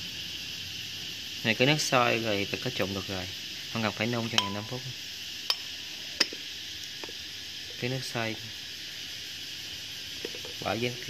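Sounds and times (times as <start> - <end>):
boiling water hiss: 0.0 - 11.0
porcelain plate clinking bowl: 4.4 - 4.8.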